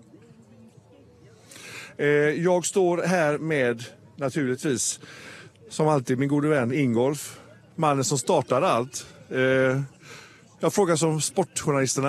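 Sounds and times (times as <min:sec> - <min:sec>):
faint background voices: 0:00.0 - 0:12.0
breath drawn into microphone: 0:01.4 - 0:02.0, 0:05.0 - 0:05.6, 0:10.0 - 0:10.5.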